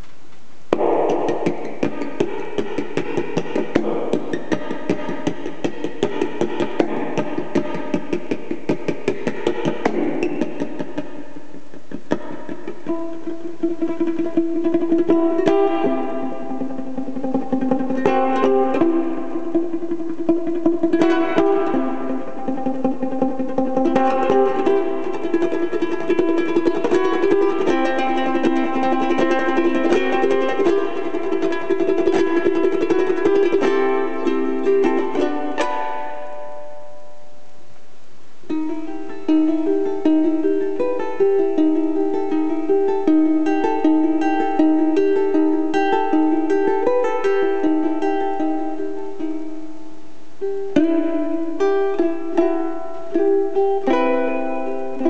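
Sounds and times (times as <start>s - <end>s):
ukulele plucked melody: 0.0s - 55.0s
ukulele strumming: 0.0s - 55.0s.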